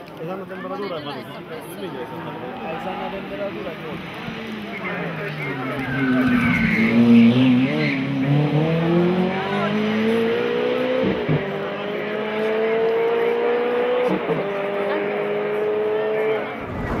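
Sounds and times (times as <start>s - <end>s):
sports car engine accelerating: 7.0s - 17.0s
gear upshifts: 16.5s - 17.0s.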